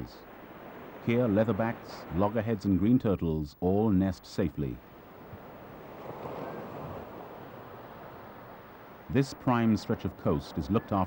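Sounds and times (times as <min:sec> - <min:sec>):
ocean surf on sandy beach: 0:00.0 - 0:03.0, 0:04.5 - 0:11.0.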